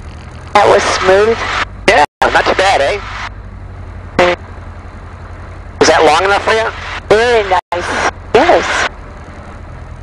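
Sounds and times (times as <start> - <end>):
small plane engine idling: 0.0 - 0.6.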